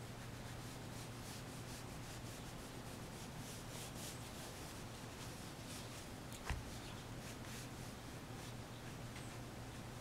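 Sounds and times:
ink brush rasping on paper: 0.0 - 9.0.

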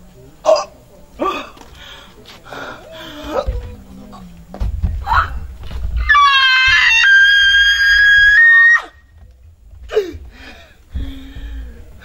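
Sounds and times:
woman screaming: 6.0 - 9.0.

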